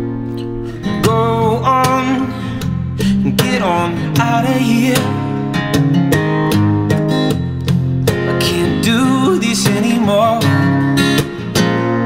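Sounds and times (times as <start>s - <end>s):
acoustic guitar strumming: 0.0s - 12.0s
man singing: 0.6s - 5.6s, 8.3s - 11.6s.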